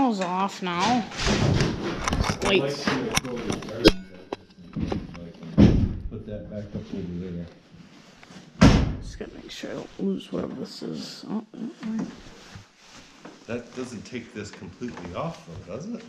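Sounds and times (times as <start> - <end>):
loud knocks and thuds: 0.9 - 2.2, 4.8 - 6.2, 8.6 - 9.2.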